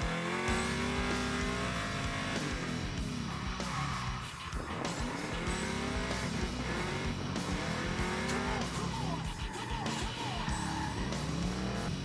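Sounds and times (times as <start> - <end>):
background music: 0.0 - 12.0
car engine revving: 0.0 - 12.0
tyre squeal: 8.3 - 11.8.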